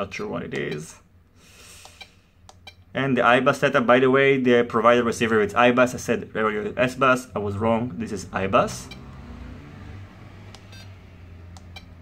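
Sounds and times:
short electronic beeps: 1.9s - 2.9s, 8.8s - 9.2s, 10.6s - 10.9s, 11.6s - 12.0s.

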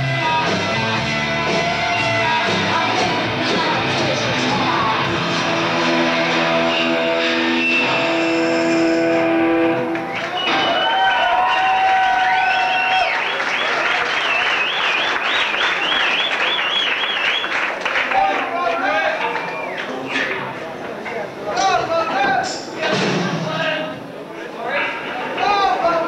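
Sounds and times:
audience applauding and cheering: 9.7s - 20.1s
loud warbling whistles: 10.1s - 17.6s, 19.4s - 20.4s.

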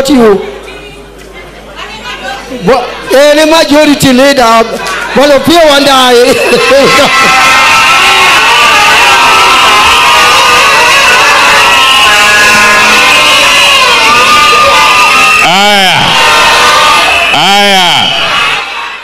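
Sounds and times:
crowd cheering and shouting: 2.5s - 19.0s
loud whoops: 6.3s - 19.0s.

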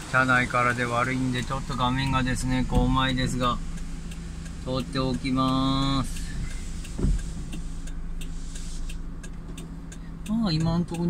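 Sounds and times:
windscreen wiper sweeping: 0.0s - 5.4s, 6.0s - 9.6s
car engine idling: 0.0s - 11.0s
faint ticking: 0.0s - 11.0s.

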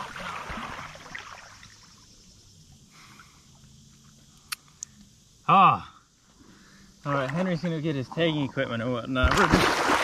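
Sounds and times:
water splashing and sloshing: 0.0s - 4.2s, 7.1s - 10.0s
quiet river background: 0.0s - 10.0s.

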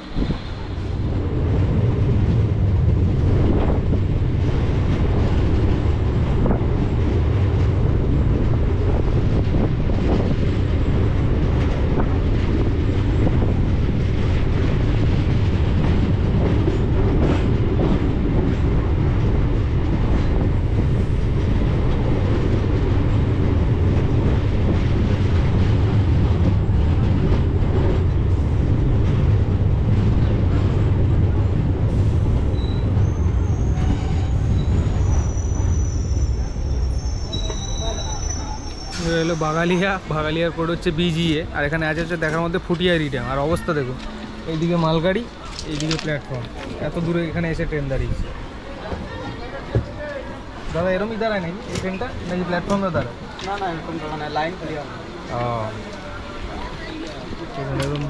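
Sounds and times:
train wheels rumbling on rails: 0.0s - 58.0s
faint high squeal: 32.5s - 39.8s.

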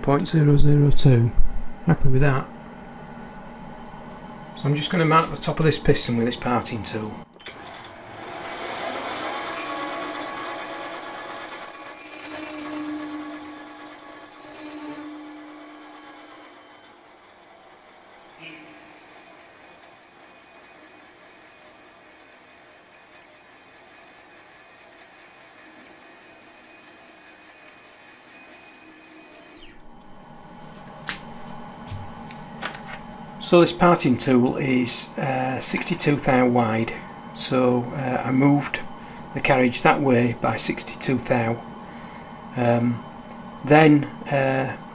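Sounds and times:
lathe tool squealing whine: 7.5s - 29.8s.

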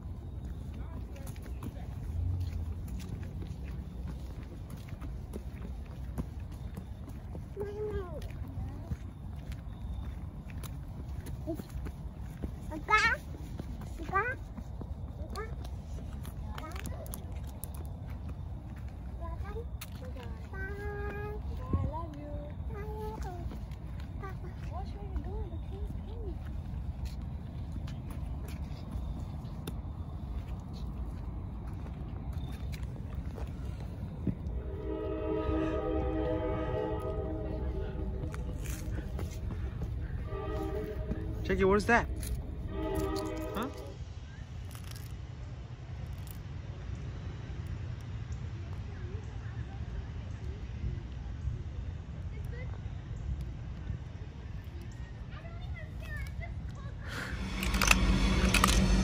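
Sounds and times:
footsteps on pavement: 0.0s - 44.0s
low rumble: 29.1s - 44.4s, 56.9s - 59.0s
train horn blast: 34.4s - 44.0s, 57.2s - 59.0s.

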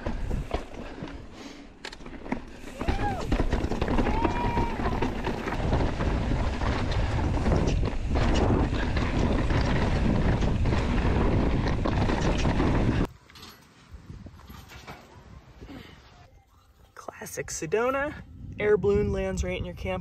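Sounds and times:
bike rattling over bumps: 0.0s - 13.7s
tyres on rock and dirt: 0.0s - 15.2s
wind buffeting microphone: 2.8s - 13.1s, 18.0s - 20.0s.

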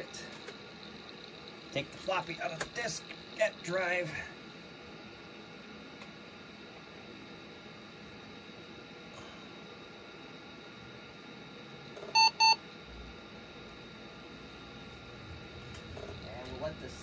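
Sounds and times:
faint electronic whine: 0.0s - 17.0s.

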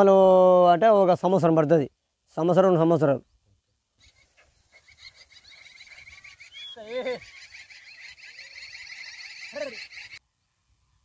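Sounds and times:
faint high pulsing chirr: 4.0s - 10.2s.

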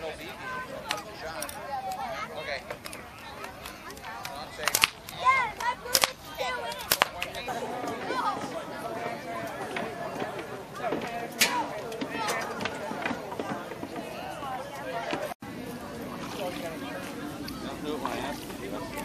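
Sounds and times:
children's voices: 0.0s - 19.0s
outdoor crowd chatter: 0.0s - 19.0s
bb gun cracks: 4.2s - 7.4s.

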